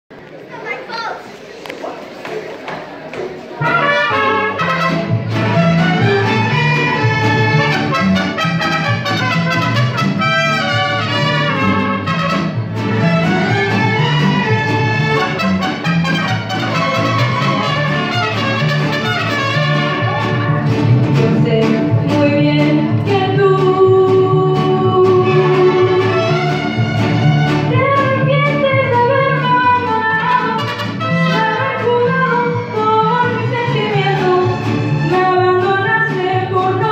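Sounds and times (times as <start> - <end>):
children chattering: 0.1 - 7.7, 10.8 - 21.3
strummed guitars: 3.6 - 36.9
violins and trumpets melody: 3.6 - 36.9
rhythmic bass line: 4.2 - 36.1.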